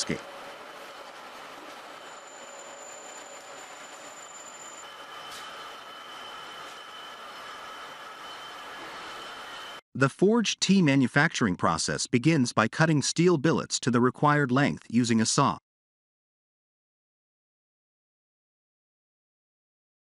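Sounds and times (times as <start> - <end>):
rolling mill machinery running: 0.0 - 9.8
faint thin high tones: 1.6 - 9.8.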